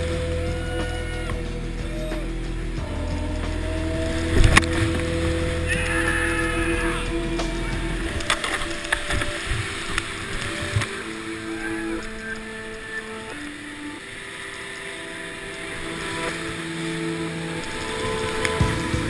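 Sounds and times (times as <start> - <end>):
background music of held notes: 0.0 - 19.0
rushing whitewater: 0.0 - 19.0.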